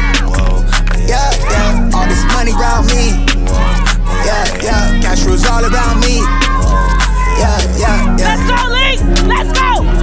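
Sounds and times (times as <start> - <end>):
hip hop track with vocals: 0.0 - 10.0.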